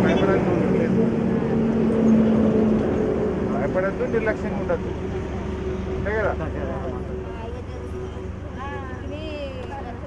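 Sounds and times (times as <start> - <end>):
motor engine humming: 0.0 - 10.0.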